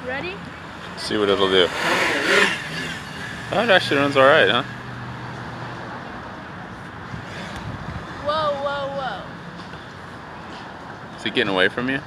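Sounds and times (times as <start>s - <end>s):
quadcopter buzzing hum: 1.2s - 4.9s.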